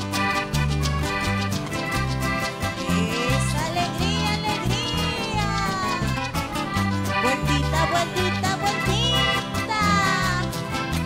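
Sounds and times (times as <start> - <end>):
andean dance music from band: 0.0 - 11.0
pulsing bass line: 0.0 - 11.0.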